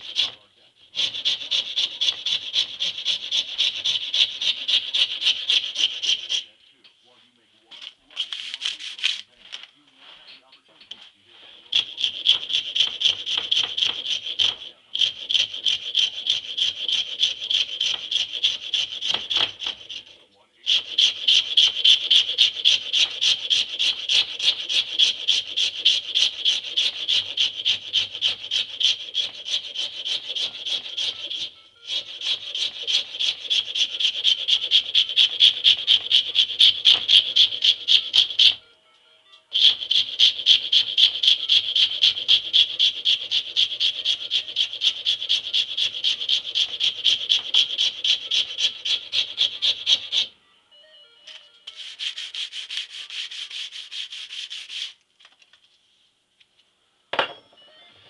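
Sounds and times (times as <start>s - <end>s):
hand file rasping on wood: 0.0s - 6.6s, 11.5s - 38.6s, 39.5s - 50.3s, 51.7s - 55.0s.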